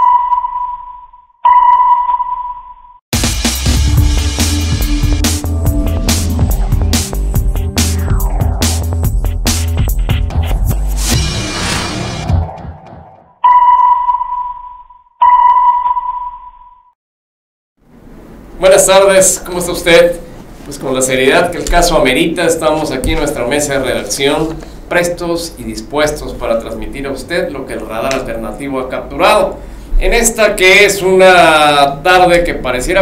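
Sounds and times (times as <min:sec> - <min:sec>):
sonar pings: 0:00.0 - 0:03.0, 0:13.4 - 0:16.9
electronic music with beat: 0:03.2 - 0:13.2.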